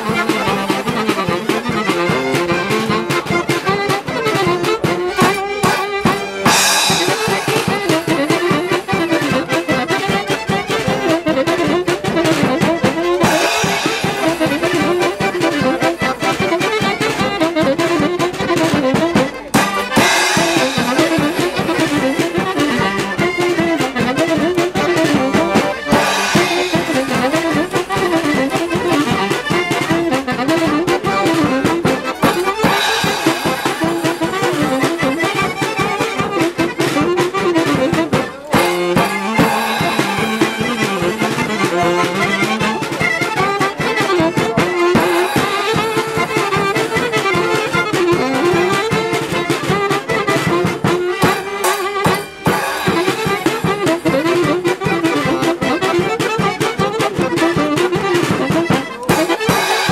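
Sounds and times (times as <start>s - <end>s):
accordion: 0.0s - 59.9s
fiddle: 0.0s - 59.9s
folk band playing: 0.0s - 59.9s
saxophone: 0.0s - 59.9s
snare drum beat: 25.9s - 29.3s, 32.2s - 36.1s, 38.6s - 42.4s.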